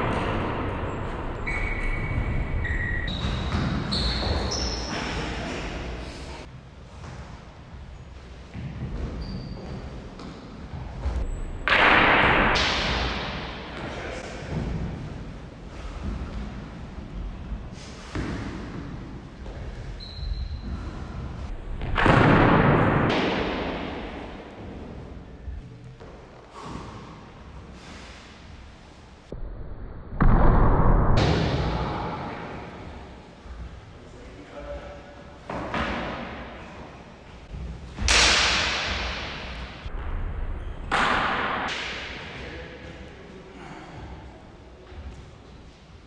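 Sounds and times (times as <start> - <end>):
longswords clashing: 38.0 - 39.8.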